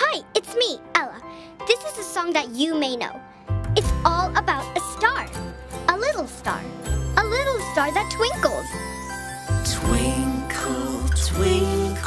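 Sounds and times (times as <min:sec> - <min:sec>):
cartoon background music: 0:00.0 - 0:12.0
tinkling chimes: 0:06.4 - 0:12.0.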